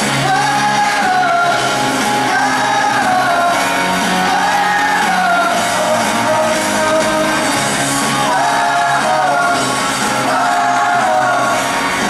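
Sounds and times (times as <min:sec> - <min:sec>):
lead vocal singing long notes: 0:00.0 - 0:12.0
pop-rock band playing live: 0:00.0 - 0:12.0.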